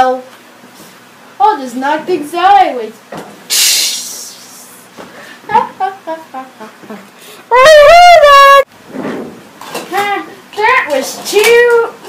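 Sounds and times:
child's loud held cry: 7.5s - 8.7s.

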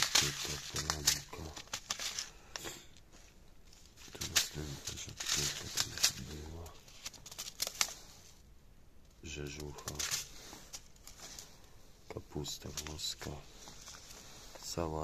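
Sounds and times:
man speaking: 0.0s - 1.7s, 4.0s - 6.8s, 9.2s - 10.5s, 12.0s - 13.6s, 14.6s - 15.0s
seed packets rustling: 0.0s - 8.5s, 9.2s - 15.0s.

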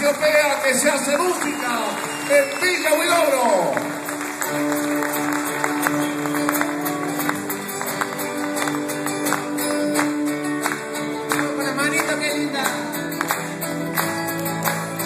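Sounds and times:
acoustic guitars strumming: 3.0s - 15.0s.

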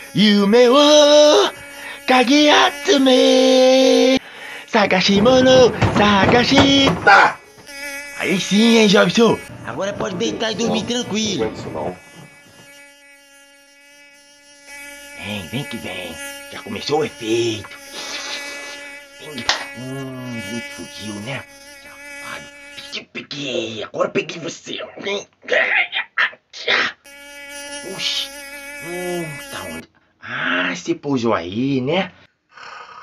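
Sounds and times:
mosquito whining in flight: 0.0s - 23.0s, 27.1s - 29.8s.

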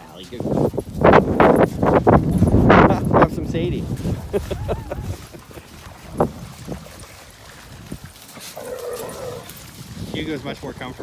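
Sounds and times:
dogs playing rough: 3.9s - 9.8s.

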